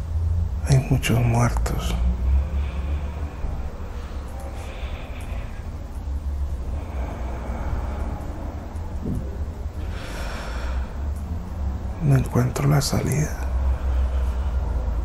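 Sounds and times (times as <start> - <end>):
low background rumble: 0.0 - 15.0
person breathing heavily: 1.6 - 15.0.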